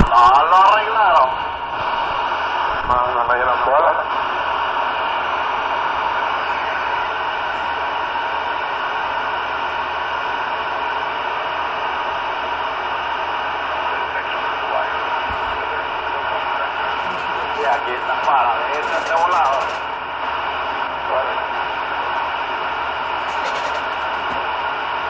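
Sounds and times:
radio static hiss: 0.0s - 25.0s.

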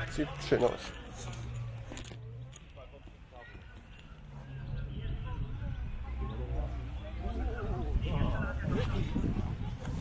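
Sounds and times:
faint metallic clinks: 0.0s - 4.4s
distant voices: 0.0s - 10.0s.

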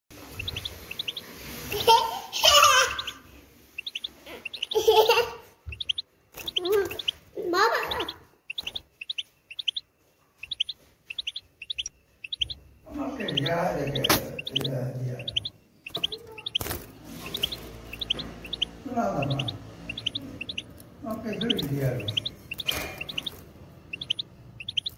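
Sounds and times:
bird chirping: 0.1s - 24.9s
goldfinch singing: 0.2s - 2.0s, 2.8s - 5.0s, 5.7s - 24.9s.

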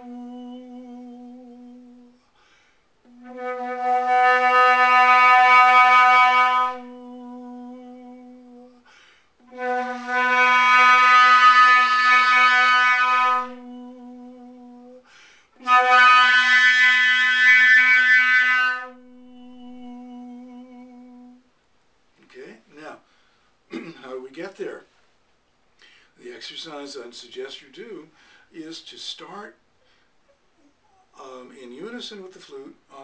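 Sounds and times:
flute tone: 3.1s - 8.8s, 9.4s - 15.0s, 15.6s - 21.4s
soft sung note: 18.9s - 21.4s.

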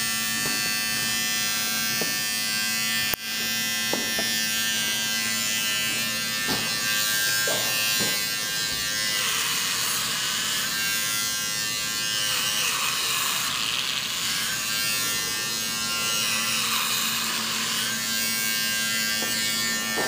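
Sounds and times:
electric hair clippers buzzing: 0.0s - 20.0s.

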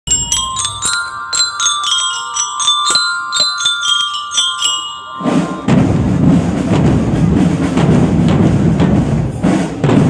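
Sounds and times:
bell lyres playing quick melody: 0.1s - 6.8s.

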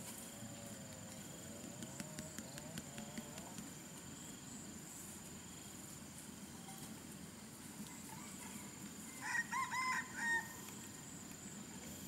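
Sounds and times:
rooster crowing: 7.9s - 10.7s.

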